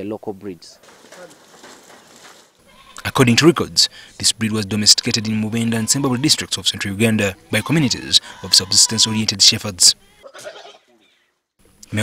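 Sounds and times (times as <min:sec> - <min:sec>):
goat bleating: 0:02.6 - 0:03.4, 0:04.7 - 0:11.1.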